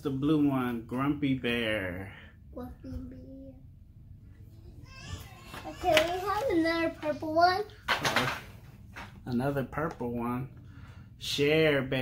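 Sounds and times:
man speaking: 0.0 - 2.2, 11.2 - 12.0.

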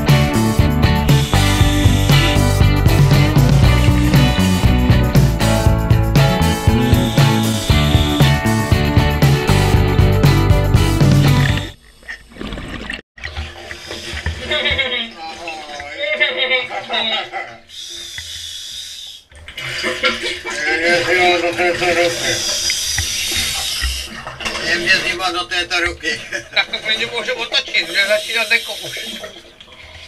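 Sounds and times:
man's voice: 0.0 - 11.4
guitar music: 0.0 - 11.8
faint underwater noise: 0.0 - 30.0
water sloshing and splashing: 11.0 - 17.0, 19.3 - 30.0.

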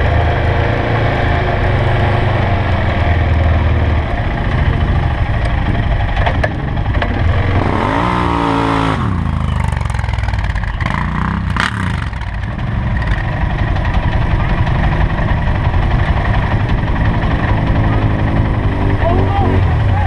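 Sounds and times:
atv engine revving and running: 0.0 - 20.0.

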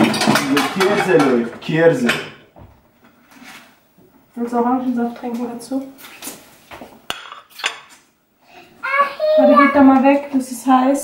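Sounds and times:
dishes and cutlery clinking: 0.0 - 2.4, 7.1 - 8.0.

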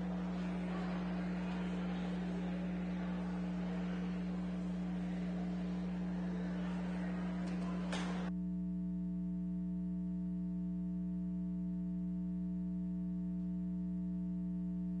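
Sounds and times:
room noise: 0.0 - 8.3.

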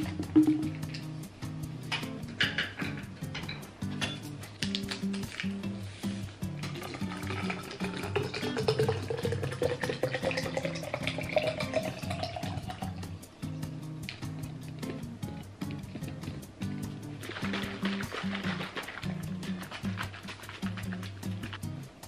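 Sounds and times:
background music: 0.0 - 22.0
water pouring into plastic bottle: 6.7 - 12.9, 17.2 - 21.2.

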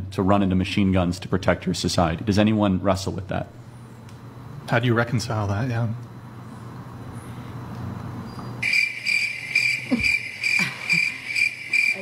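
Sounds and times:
cricket chirping: 6.1 - 12.0.

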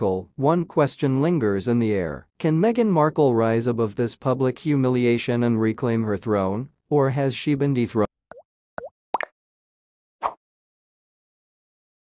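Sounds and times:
bubbly plop sound effects: 8.3 - 9.4.

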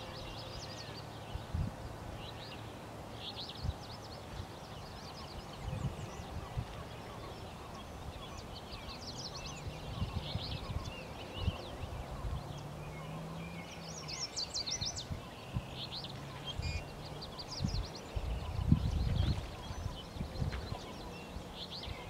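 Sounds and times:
songbirds chirping and singing: 0.0 - 22.0.

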